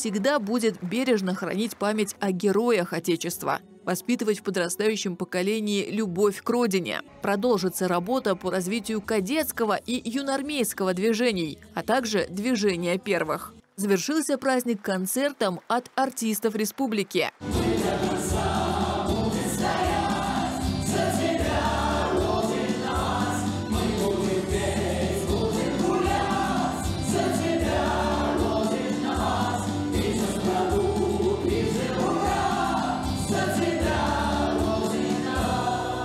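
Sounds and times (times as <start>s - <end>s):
instrumental accompaniment: 17.4s - 36.0s
mixed choir singing: 17.4s - 36.0s.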